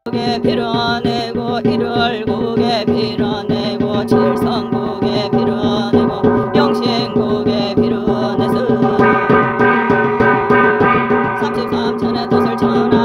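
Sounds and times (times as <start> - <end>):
woman chanting: 0.0 - 10.3, 11.2 - 13.0
brass gong beaten rhythmically: 0.1 - 13.0.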